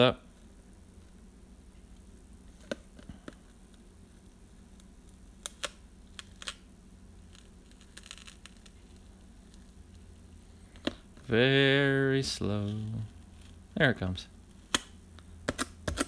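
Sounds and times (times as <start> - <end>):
low steady room hum: 0.0 - 16.0
scratchy tape peel: 3.7 - 10.2, 14.5 - 16.0.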